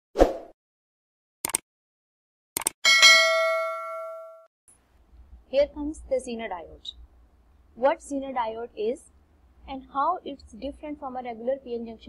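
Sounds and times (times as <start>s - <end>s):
cursor clicks: 1.4s - 1.6s, 2.6s - 2.8s
notification bell ding: 2.9s - 4.4s.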